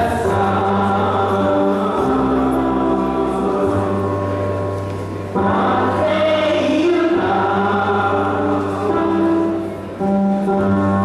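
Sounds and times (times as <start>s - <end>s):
choir singing gospel: 0.0s - 4.4s, 5.3s - 9.5s.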